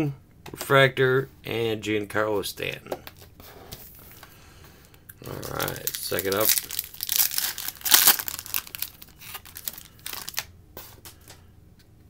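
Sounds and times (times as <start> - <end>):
foil wrapper crinkling and tearing: 5.2 - 10.5.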